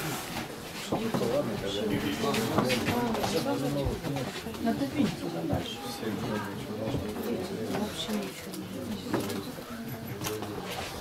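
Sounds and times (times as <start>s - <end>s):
overlapping chatter of people: 0.0s - 11.0s.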